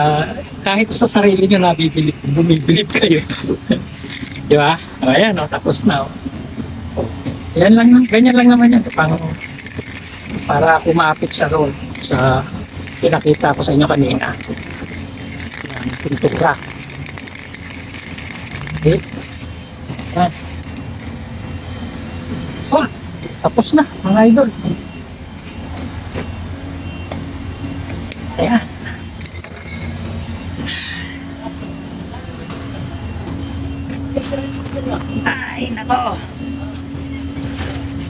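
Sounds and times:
low mechanical hum: 0.0s - 38.0s
spray can hissing: 1.4s - 4.5s, 7.3s - 21.1s
rapid crackle of clicks: 7.9s - 21.2s.

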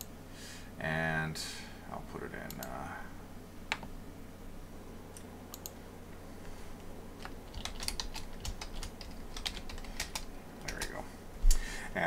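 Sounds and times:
keyboard typing: 7.2s - 11.0s.

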